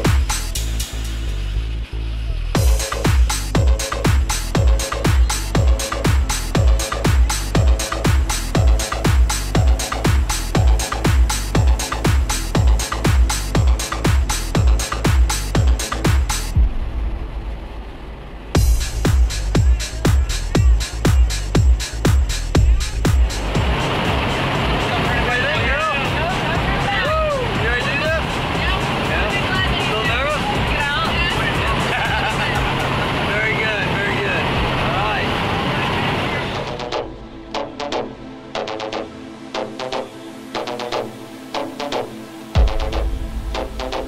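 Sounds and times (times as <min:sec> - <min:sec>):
electronic music with beat: 0:00.0 - 0:16.7, 0:18.6 - 0:32.9, 0:36.6 - 0:44.0
propeller plane engine and cabin noise: 0:23.2 - 0:37.1.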